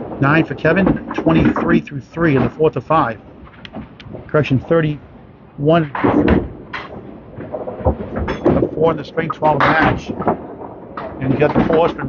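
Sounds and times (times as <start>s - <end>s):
bowling ball rolling: 0.0s - 2.6s, 3.2s - 12.0s
background voices: 5.6s - 6.4s, 8.5s - 10.3s, 11.2s - 12.0s.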